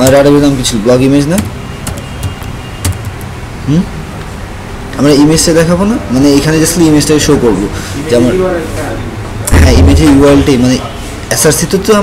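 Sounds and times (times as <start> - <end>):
keyboard keys clicking: 0.0 - 0.4, 1.2 - 3.3
steady low hum: 9.1 - 11.2.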